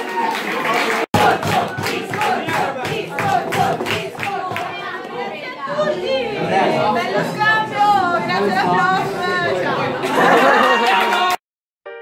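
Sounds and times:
young voices chattering: 4.4 - 10.5
laughter: 10.0 - 11.2.

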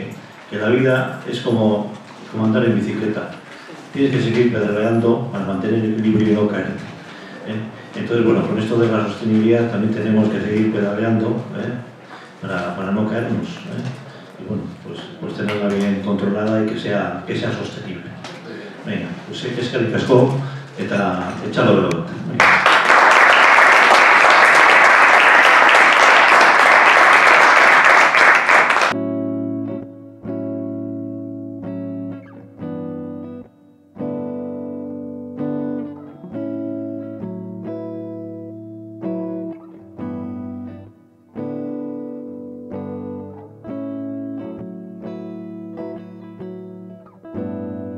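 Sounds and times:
audience applause: 22.3 - 29.0
plucked guitar over bass line: 28.9 - 47.9.

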